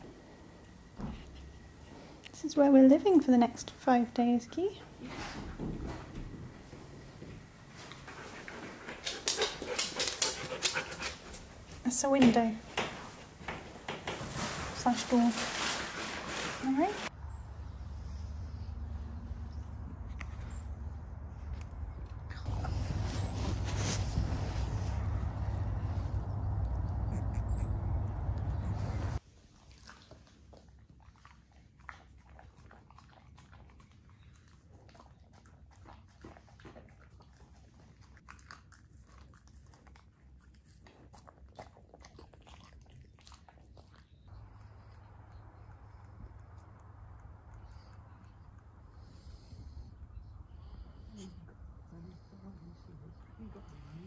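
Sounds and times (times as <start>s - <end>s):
low steady hum: 16.4s - 29.2s, 44.1s - 54.0s.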